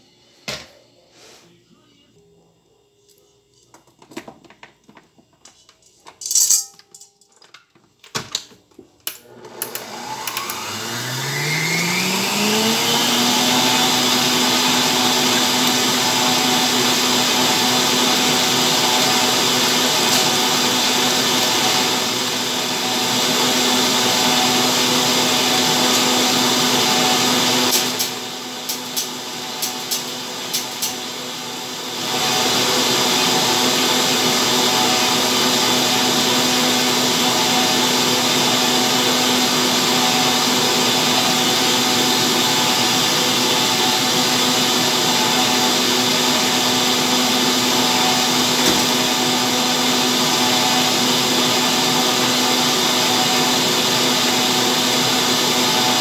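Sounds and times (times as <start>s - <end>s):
electric stand mixer whisking: 9.2s - 56.0s.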